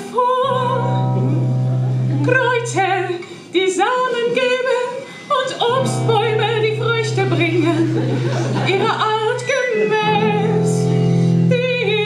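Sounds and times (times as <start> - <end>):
woman singing with vibrato: 0.0 - 12.0
low held note: 0.6 - 2.4.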